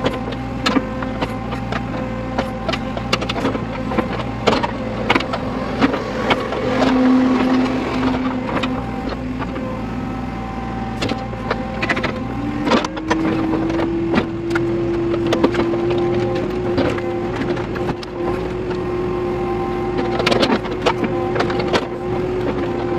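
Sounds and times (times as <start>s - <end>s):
diesel engine under load: 0.0s - 22.9s
hydraulic whining tone: 0.0s - 22.9s.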